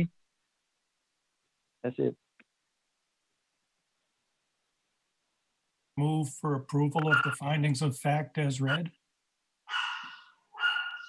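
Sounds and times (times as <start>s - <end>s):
dog barking: 9.7s - 11.0s.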